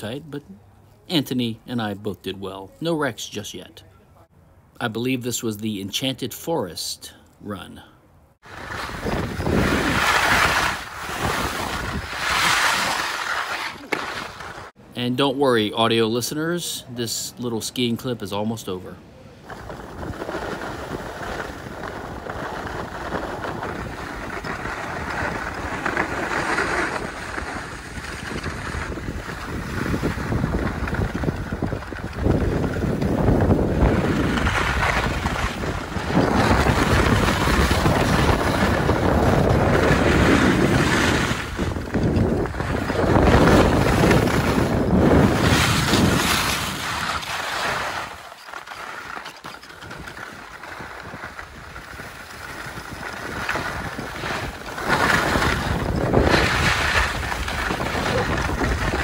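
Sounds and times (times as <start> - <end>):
skis scraping over snow: 8.4 - 14.7, 19.4 - 59.0
wind on microphone: 8.5 - 13.0, 19.4 - 47.2, 49.8 - 59.0.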